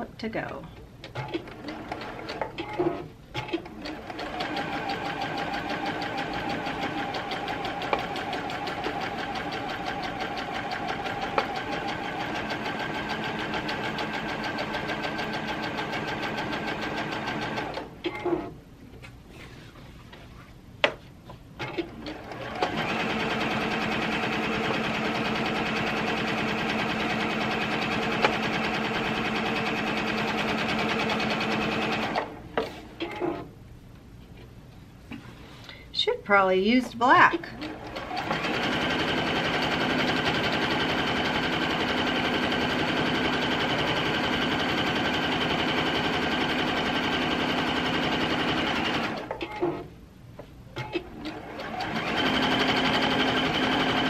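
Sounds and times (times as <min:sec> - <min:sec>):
sewing machine running: 0:01.2 - 0:17.9, 0:21.9 - 0:32.4, 0:37.6 - 0:49.3, 0:51.0 - 0:54.0.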